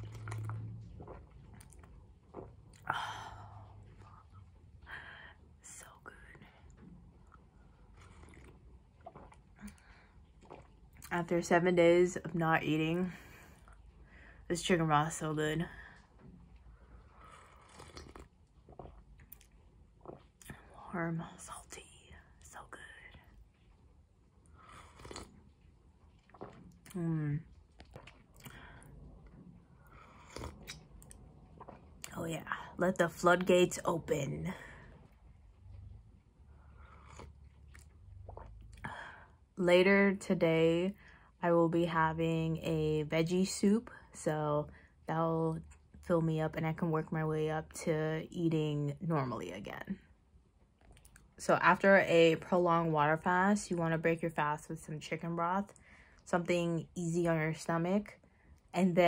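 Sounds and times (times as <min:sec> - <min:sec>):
person slurping soup: 0:17.1 - 0:19.0, 0:24.6 - 0:25.4, 0:29.8 - 0:31.0, 0:36.6 - 0:38.6
lip and tongue clicks: 0:30.2 - 0:32.2.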